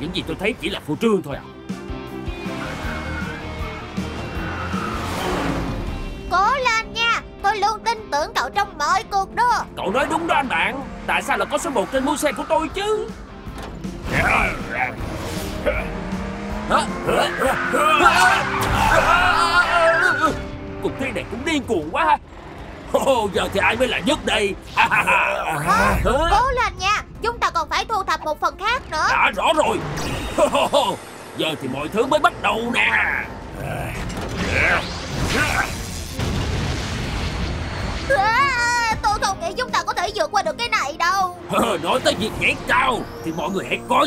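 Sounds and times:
background music: 0:00.0 - 0:44.0
cartoon race car effects: 0:02.4 - 0:06.1, 0:10.0 - 0:13.1, 0:14.0 - 0:27.4, 0:28.0 - 0:36.1.

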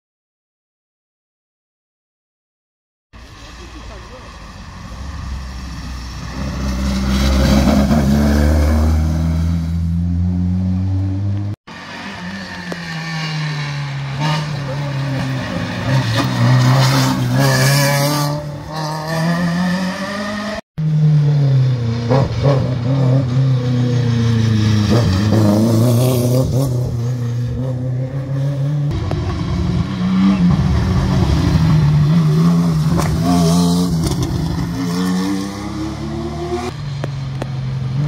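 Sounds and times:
rally car engine revving: 0:06.2 - 0:38.0.

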